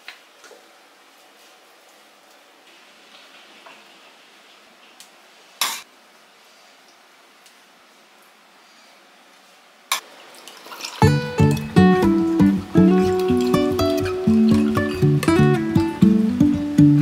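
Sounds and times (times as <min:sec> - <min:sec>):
liquid pouring over ice: 0:10.0 - 0:11.7
ice clinking in glass: 0:11.0 - 0:11.8
acoustic guitar music: 0:11.0 - 0:17.0.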